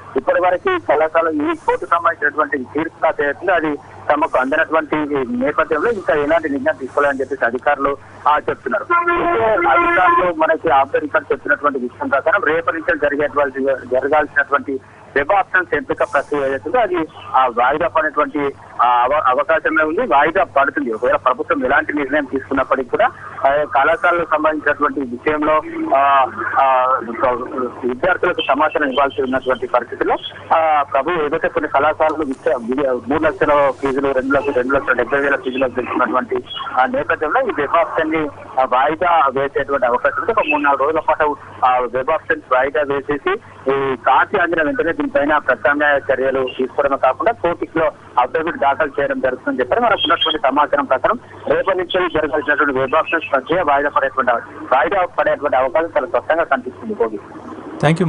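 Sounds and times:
man speaking over telephone: 0:00.0 - 0:57.2, 0:57.8 - 0:58.0.

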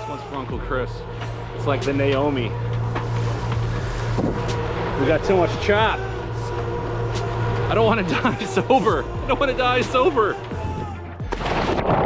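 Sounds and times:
boat engine drone: 0:00.0 - 0:12.0
wind and water wash: 0:03.3 - 0:05.0.

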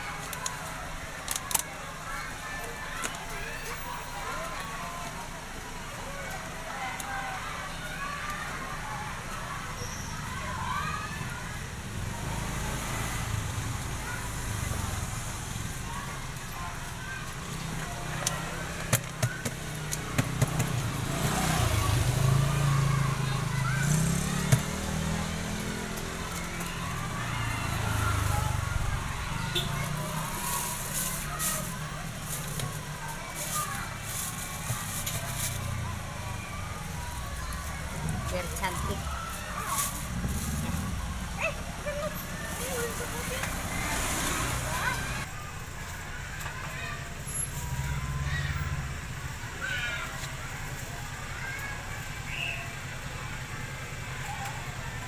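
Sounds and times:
faint indistinct voices: 0:00.0 - 0:55.0
passing traffic rumble: 0:00.0 - 0:55.0
vehicle engine running: 0:11.3 - 0:55.0.

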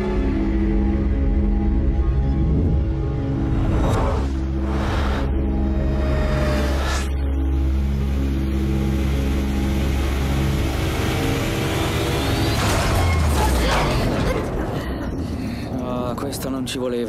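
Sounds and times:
sustained low tones: 0:00.0 - 0:12.4.

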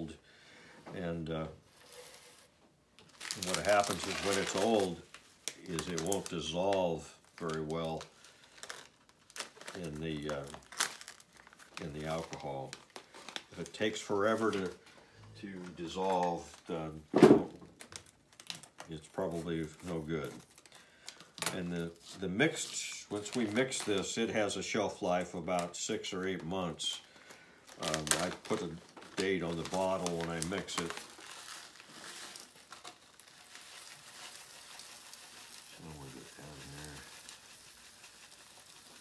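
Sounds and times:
plastic bag rustling: 0:01.6 - 0:15.0, 0:15.6 - 0:39.0.

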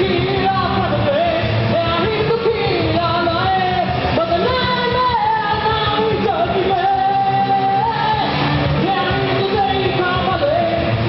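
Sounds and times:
drums: 0:00.0 - 0:11.0
electric guitars: 0:00.0 - 0:11.0
live rock band playing: 0:00.0 - 0:11.0.

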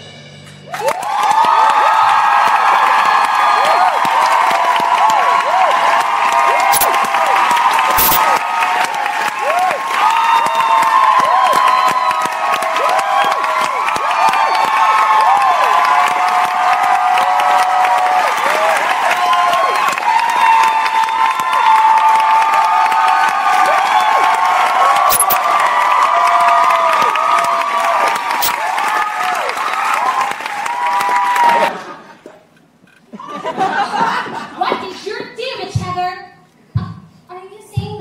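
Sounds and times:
audience cheering and screaming: 0:00.7 - 0:32.0
audience applause: 0:00.7 - 0:32.2.

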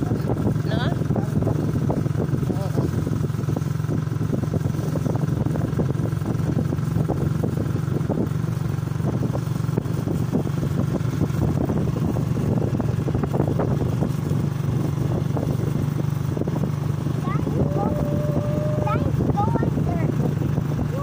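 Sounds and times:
small motorcycle engine running: 0:00.0 - 0:21.0
wind buffeting microphone: 0:00.0 - 0:21.0.

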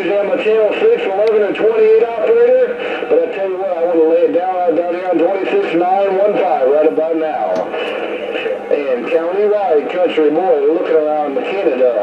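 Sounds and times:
man's voice over radio speaker: 0:00.0 - 0:12.0.

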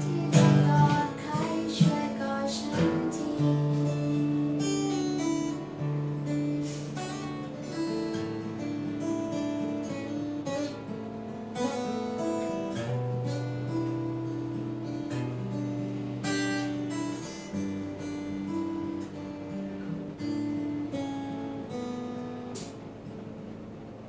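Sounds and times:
acoustic guitar chords: 0:00.0 - 0:24.0.

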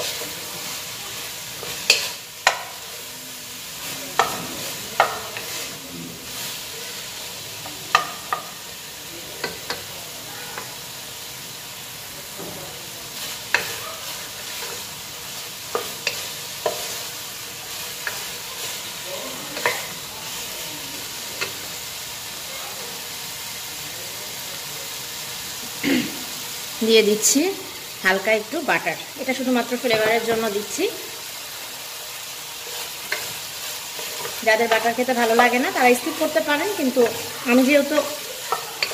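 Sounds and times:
food sizzling in a pot: 0:00.0 - 0:38.9.

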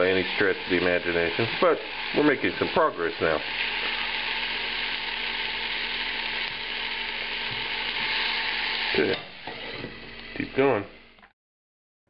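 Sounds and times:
spatula turning food: 0:00.0 - 0:10.8
vegetables sizzling in a pan: 0:00.0 - 0:11.1.

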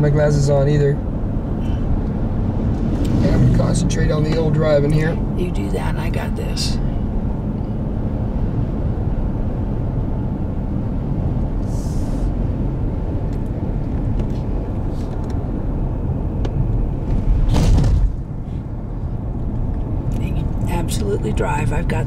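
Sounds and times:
car engine and tyres rumbling: 0:00.0 - 0:22.0
loud whoosh: 0:01.5 - 0:08.2.

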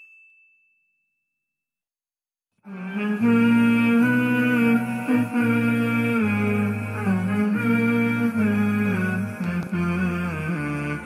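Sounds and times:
bell-like ding: 0:00.0 - 0:01.2.

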